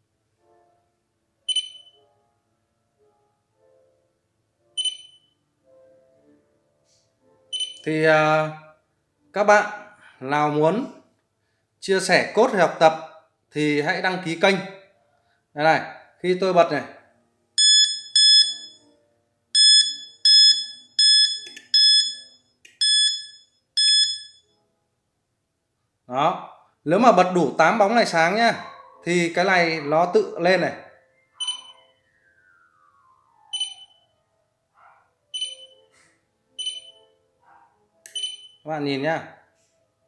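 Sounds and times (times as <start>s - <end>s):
faint lower tones: 30.9s - 34.4s
short high electronic beep: 31.4s - 32.0s, 33.5s - 34.0s.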